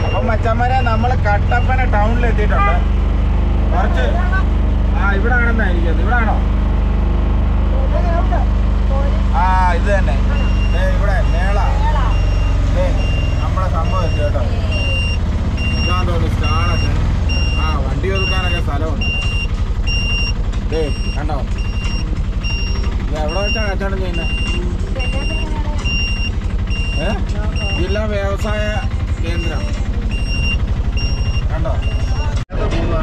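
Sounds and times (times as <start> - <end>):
high electronic beep: 0.0 - 3.1, 10.3 - 32.4
auto-rickshaw engine running: 0.0 - 33.0.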